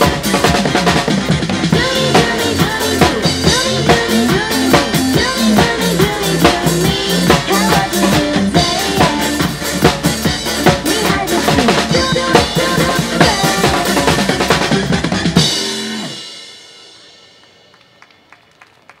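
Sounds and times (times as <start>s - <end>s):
pop backing track: 0.0s - 17.0s
drum kit playing: 0.0s - 17.7s.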